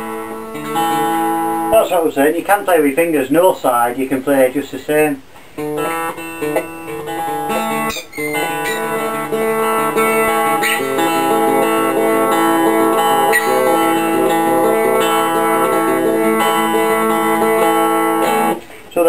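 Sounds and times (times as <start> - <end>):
cigar box guitar fingerstyle: 0.0 - 1.7, 5.4 - 18.9.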